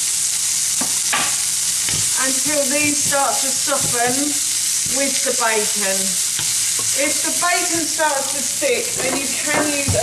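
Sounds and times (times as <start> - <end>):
food sizzling in oil: 0.0 - 10.0
wooden spatula scraping pan: 8.8 - 10.0.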